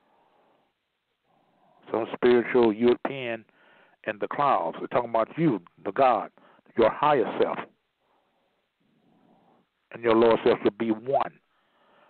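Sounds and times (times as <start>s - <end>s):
faint breath: 0.0s - 1.9s, 3.5s - 4.0s, 6.4s - 6.7s, 8.0s - 9.8s, 11.5s - 12.0s.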